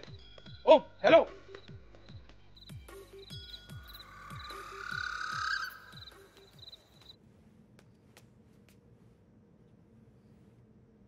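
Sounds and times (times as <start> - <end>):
frogs croaking: 2.6 - 7.2
insect trills: 2.6 - 7.2
eerie rising tone: 3.7 - 6.7.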